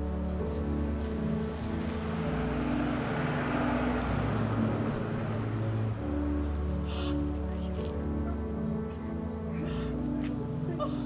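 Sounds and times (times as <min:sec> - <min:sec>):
rushing noise: 0:00.1 - 0:06.9.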